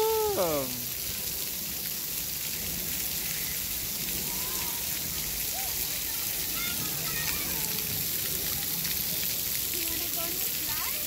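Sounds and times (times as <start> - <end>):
water splashing on pavement: 0.0 - 11.0.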